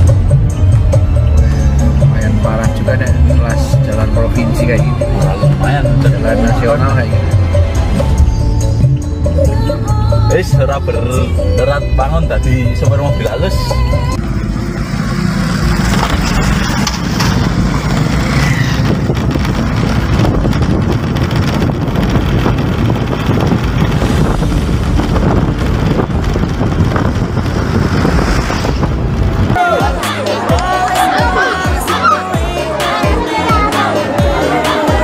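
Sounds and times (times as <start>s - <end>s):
tyres and road noise rumble: 0.0s - 35.0s.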